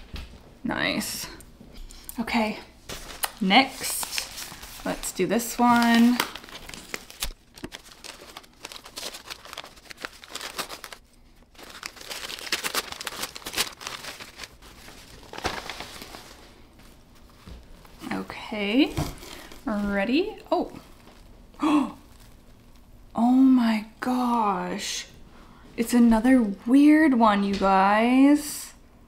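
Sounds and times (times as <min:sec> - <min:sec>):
paper wrapping crinkling: 0:02.8 - 0:22.9.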